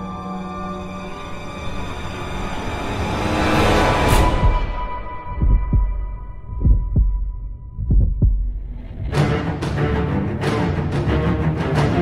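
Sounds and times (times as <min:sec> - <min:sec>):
heartbeat thumps: 0:04.4 - 0:09.4.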